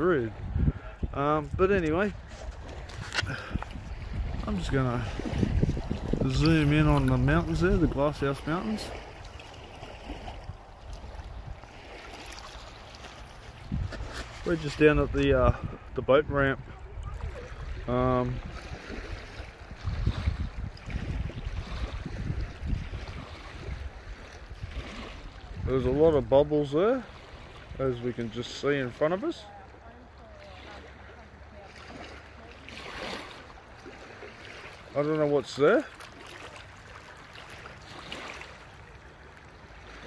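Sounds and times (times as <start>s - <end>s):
wind buffeting microphone: 0.0s - 9.4s, 13.2s - 26.7s
small waves lapping and splashing: 0.0s - 40.0s.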